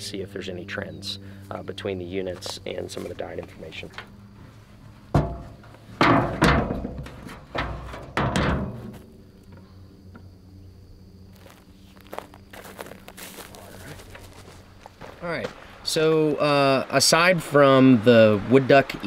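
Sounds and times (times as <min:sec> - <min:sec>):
footsteps through dry grass: 0:02.2 - 0:03.6, 0:11.3 - 0:15.7
metal ladder thunks and scrapes: 0:04.0 - 0:09.1.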